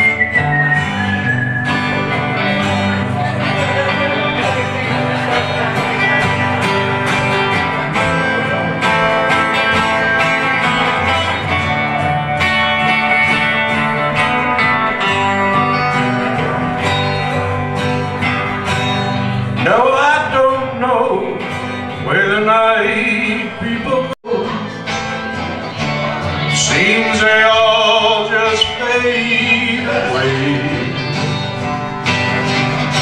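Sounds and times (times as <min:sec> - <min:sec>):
man singing: 0:00.0 - 0:12.2, 0:19.3 - 0:31.7
acoustic guitars playing: 0:00.0 - 0:33.0.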